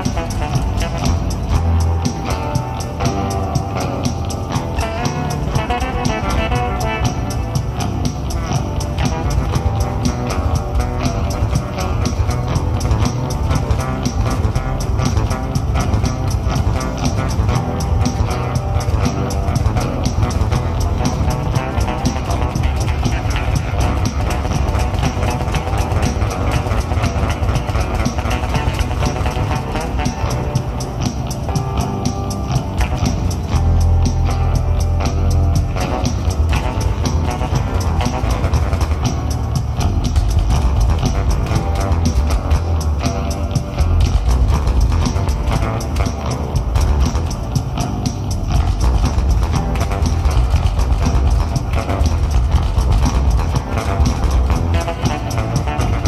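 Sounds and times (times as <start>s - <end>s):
drum beat: 0.0s - 56.0s
electric bass guitar: 0.0s - 56.0s.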